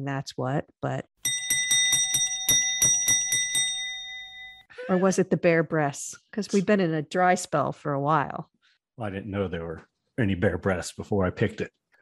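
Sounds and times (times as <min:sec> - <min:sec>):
bell struck rapidly: 0:01.2 - 0:04.7.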